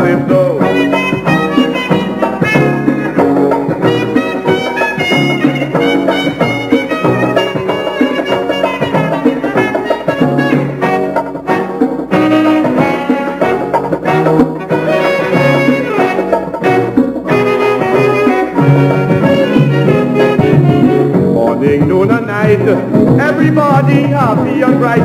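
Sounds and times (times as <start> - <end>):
brass section playing melody: 0.0 - 21.4
steady dance beat: 0.0 - 25.0.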